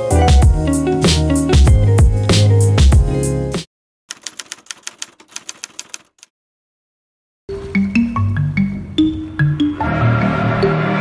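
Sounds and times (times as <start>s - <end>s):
typewriter key clicks: 4.1s - 6.3s.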